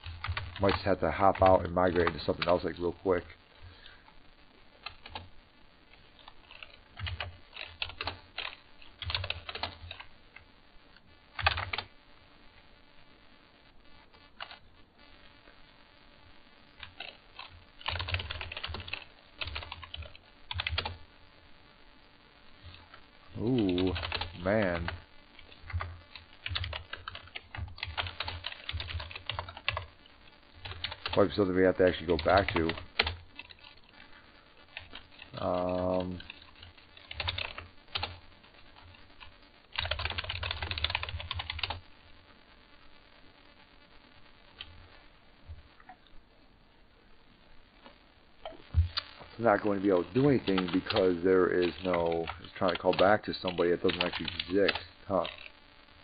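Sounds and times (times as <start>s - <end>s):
typing on computer keyboard: 0.0s - 0.7s, 6.2s - 10.1s, 16.8s - 21.0s, 23.7s - 24.3s, 25.7s - 29.9s, 30.6s - 31.2s, 32.3s - 33.8s, 34.8s - 38.1s, 39.8s - 41.8s, 51.7s - 55.5s.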